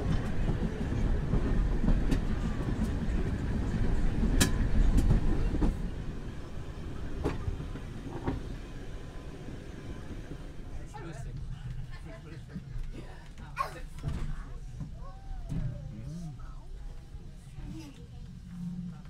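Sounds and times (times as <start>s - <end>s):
railway coach running rumble: 0.0s - 19.0s.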